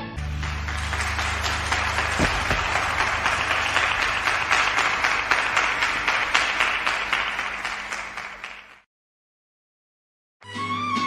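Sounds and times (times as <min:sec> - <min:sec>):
audience applauding: 0:00.1 - 0:08.9.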